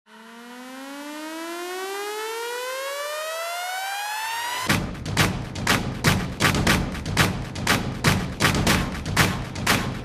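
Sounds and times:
synthesized rising sweep: 0.1 - 4.8.

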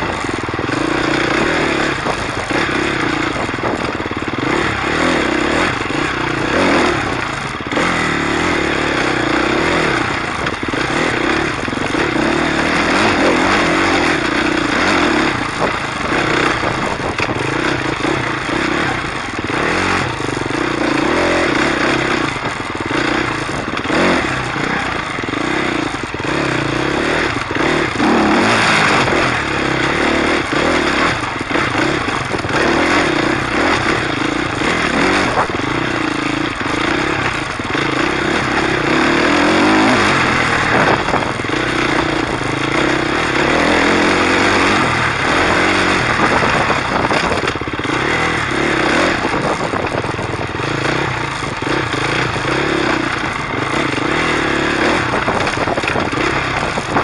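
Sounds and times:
bike clattering over bumps: 0.0 - 57.0
dirt bike engine revving: 0.0 - 57.0.

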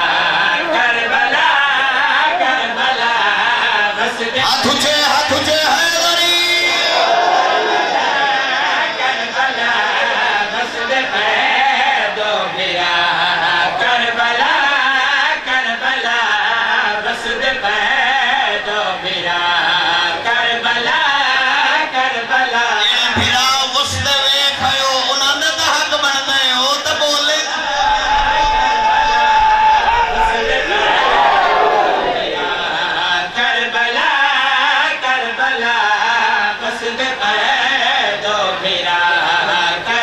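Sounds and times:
men chanting over loudspeakers: 0.0 - 40.0.

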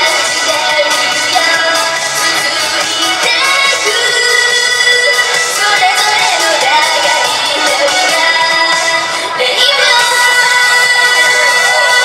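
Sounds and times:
backing music through pa: 0.0 - 12.0
woman singing amplified: 0.0 - 12.0.

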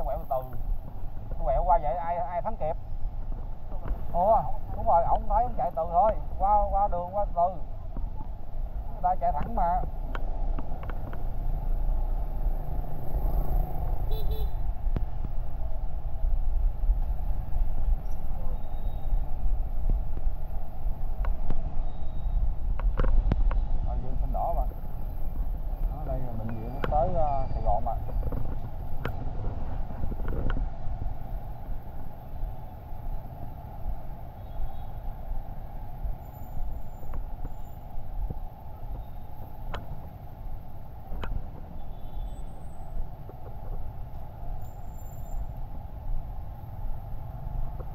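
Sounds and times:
street traffic noise: 0.0 - 47.9
wind rumble on microphone: 0.0 - 47.9
voices: 23.8 - 30.3.

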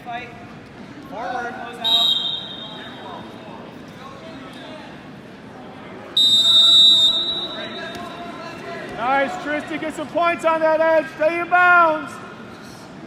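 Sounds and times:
referee's whistle blasts: 1.8 - 3.1, 6.2 - 8.0.

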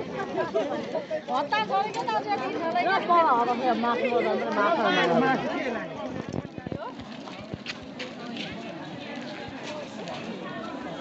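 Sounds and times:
faint chatter of voices: 0.0 - 11.0.

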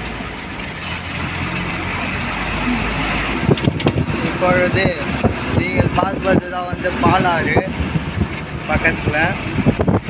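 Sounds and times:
bus engine drone: 0.0 - 10.0
road and wind noise hiss: 0.0 - 10.0.

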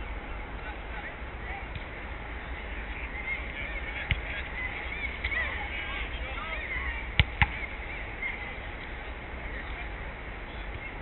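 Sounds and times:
football kick thud: 7.2 - 7.6.

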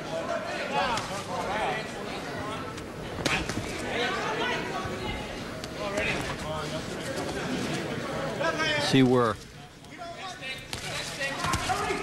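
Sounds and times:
crowd murmur: 0.0 - 10.4.

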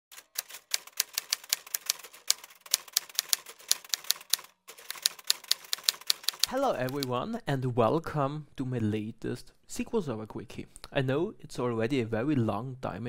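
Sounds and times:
keys being typed: 0.1 - 7.1.

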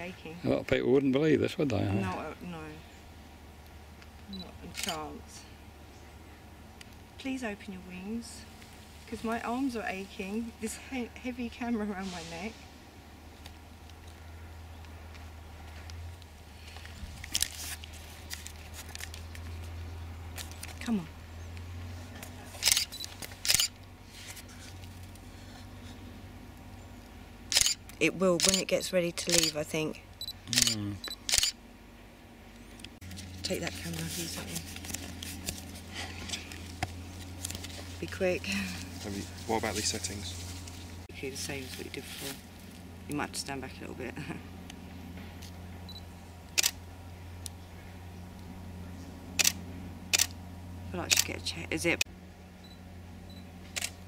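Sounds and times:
low steady hum: 0.0 - 54.0
camera shutter clicks: 4.7 - 5.0, 22.6 - 23.8, 27.5 - 27.8, 28.4 - 28.7, 29.3 - 29.6, 30.6 - 31.6, 46.6 - 46.8, 49.4 - 50.4, 51.1 - 51.3, 53.7 - 54.0
camera autofocus beep: 30.2 - 31.6, 45.9 - 46.7, 52.6 - 53.9.

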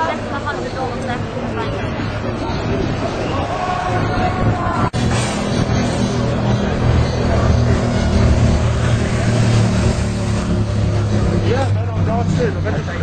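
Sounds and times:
street traffic: 0.0 - 13.0
voices calling out: 0.0 - 13.0
vehicle engine running: 5.0 - 13.0.

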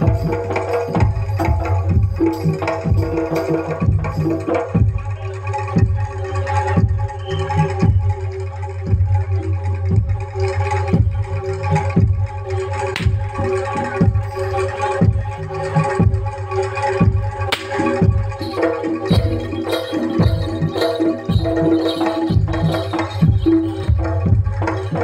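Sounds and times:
ringing gong and metallophone: 0.0 - 5.2, 17.8 - 25.0
sharp cracks: 13.0 - 13.3, 17.5 - 17.9
hand drum strokes: 17.6 - 25.0.

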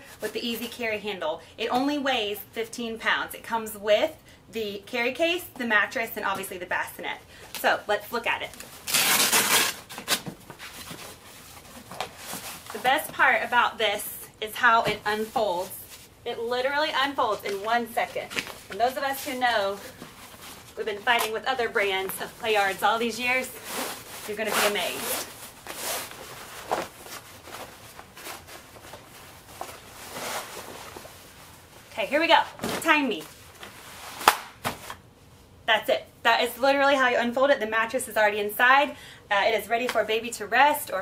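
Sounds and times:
fabric bag rustling and scraping: 17.7 - 32.0.

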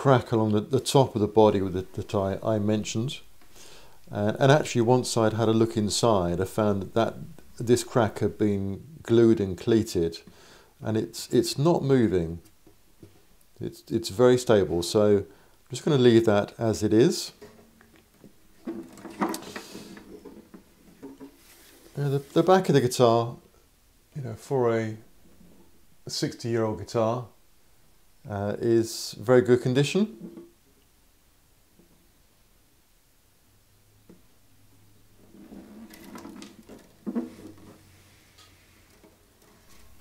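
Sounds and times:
guitar handling knock and rustle: 17.4 - 21.5, 35.8 - 37.8.

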